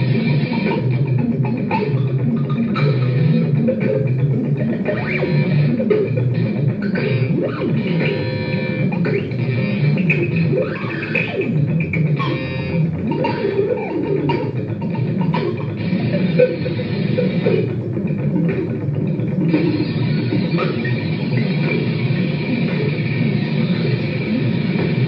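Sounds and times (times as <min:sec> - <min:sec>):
amplified plucked and scraped sounds: 0:00.0 - 0:25.0.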